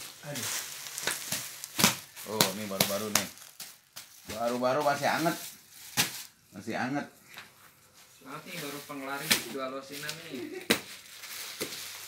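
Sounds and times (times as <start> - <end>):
plastic packaging crinkling: 0.0 - 6.4, 8.5 - 12.0.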